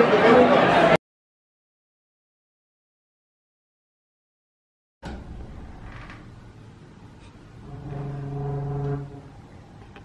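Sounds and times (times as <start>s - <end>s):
low pipe organ note: 7.6s - 9.5s.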